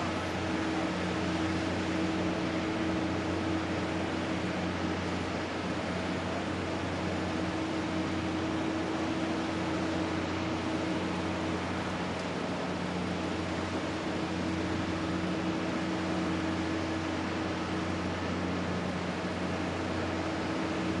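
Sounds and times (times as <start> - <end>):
steady machine hum: 0.0 - 21.0.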